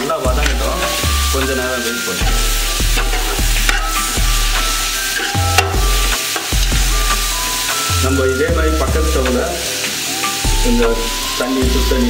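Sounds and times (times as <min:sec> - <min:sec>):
background music with bass: 0:00.0 - 0:12.0
vegetables sizzling in oil: 0:00.0 - 0:12.0
metal spatula scraping pot: 0:02.2 - 0:07.7.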